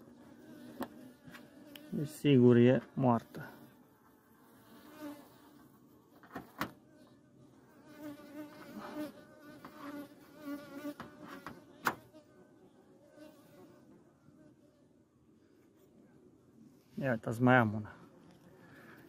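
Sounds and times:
honeybees buzzing: 0:00.0 - 0:05.9, 0:06.7 - 0:13.7.

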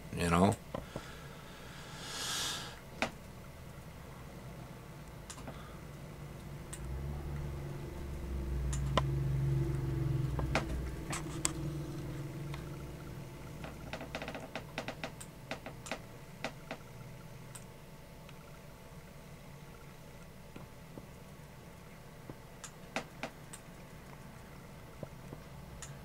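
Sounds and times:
low hum: 0:00.0 - 0:26.0.

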